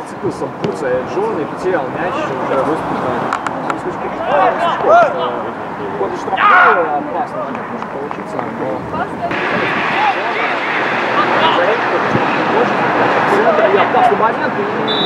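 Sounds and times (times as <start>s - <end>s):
players and coaches shouting: 1.9s - 3.3s, 3.9s - 7.5s.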